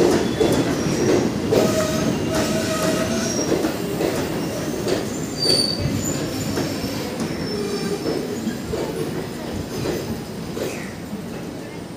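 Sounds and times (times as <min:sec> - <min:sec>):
clacks over rail joints: 0:00.0 - 0:06.0
train wheels rumbling on rails: 0:00.0 - 0:11.9.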